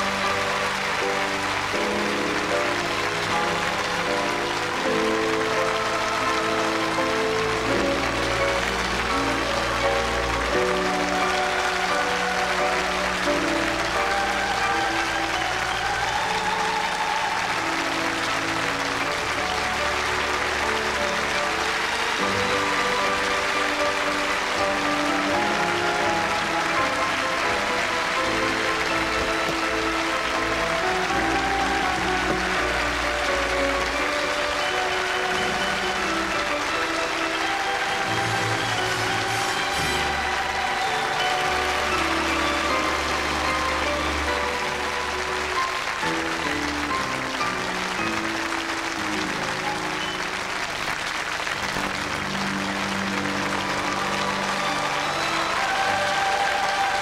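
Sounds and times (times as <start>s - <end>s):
audience applauding: 0.0s - 57.0s
music playing: 0.0s - 57.0s.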